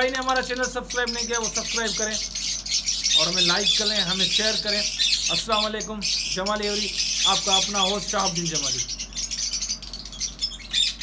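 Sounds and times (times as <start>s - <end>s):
parrots chirping and squawking: 0.0s - 11.0s.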